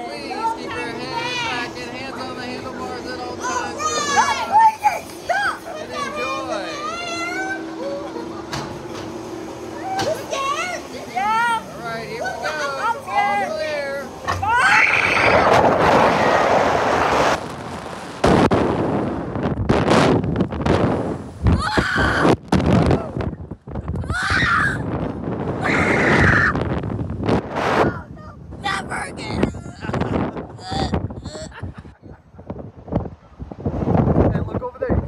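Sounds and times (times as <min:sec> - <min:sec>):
faint background hum: 0:00.0 - 0:35.0
wind buffeting microphone: 0:14.4 - 0:35.0
child's excited cries: 0:24.0 - 0:24.8.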